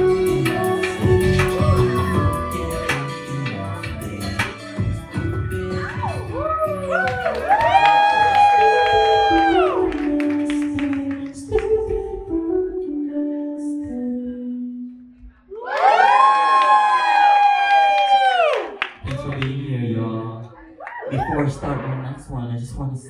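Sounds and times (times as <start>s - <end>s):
person singing long high notes: 0.0s - 7.2s.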